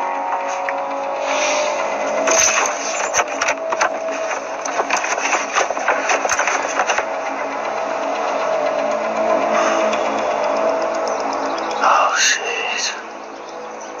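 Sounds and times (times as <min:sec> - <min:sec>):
steady sustained tone: 0:00.0 - 0:14.0
rummaging in dashboard compartment: 0:02.1 - 0:07.1.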